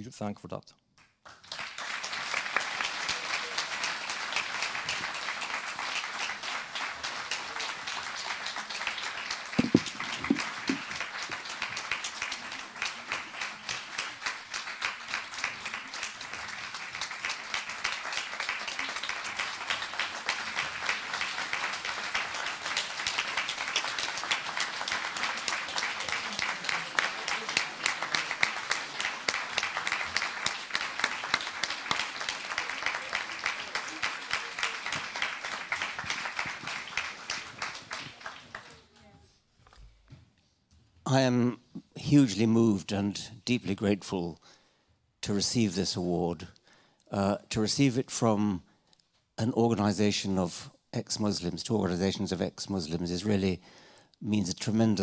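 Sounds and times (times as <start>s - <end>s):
audience applauding: 1.2s - 39.0s.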